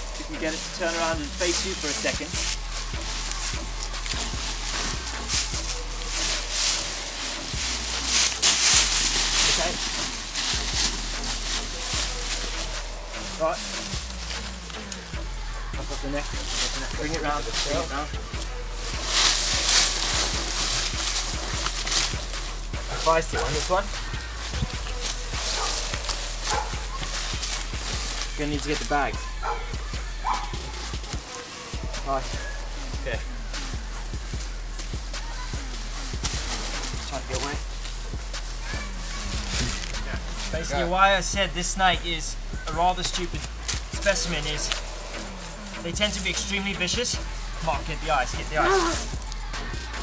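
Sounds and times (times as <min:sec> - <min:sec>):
dry leaves crackling and rustling: 0:00.0 - 0:50.0
dog barking: 0:23.3 - 0:23.7, 0:25.4 - 0:27.1, 0:29.3 - 0:31.4.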